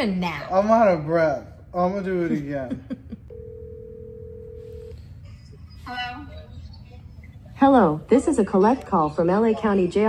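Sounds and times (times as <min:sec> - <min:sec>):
telephone ringing tone: 0:03.3 - 0:05.0.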